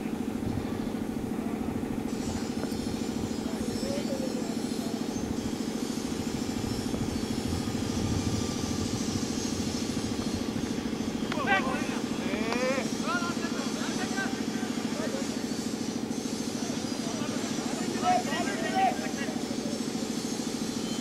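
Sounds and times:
motor droning: 0.0 - 21.0.

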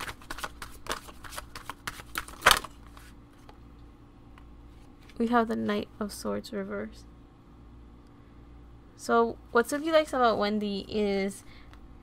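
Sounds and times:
cards being shuffled: 0.0 - 3.6.

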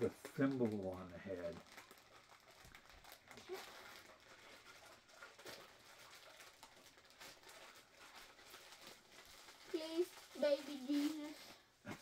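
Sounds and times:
foil bag crinkling: 0.0 - 11.8.

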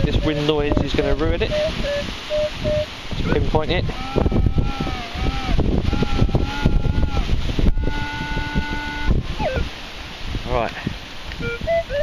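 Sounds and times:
metal detector tone: 0.0 - 4.8, 6.0 - 9.7, 11.4 - 12.0
wind rumble on microphone: 0.0 - 12.0.

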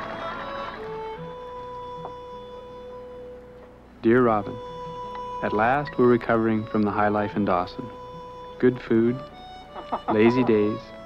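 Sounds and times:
soundtrack music with held notes: 0.0 - 11.0.

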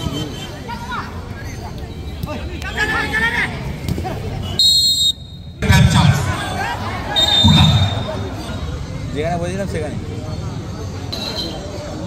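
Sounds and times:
spectators talking and shouting: 0.0 - 12.0
referee's whistle blasts: 4.5 - 5.6, 7.2 - 8.2.

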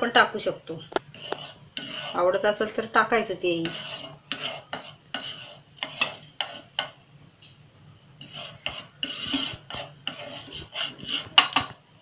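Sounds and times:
wooden spatula scraping griddle: 0.0 - 7.0, 8.2 - 11.8.

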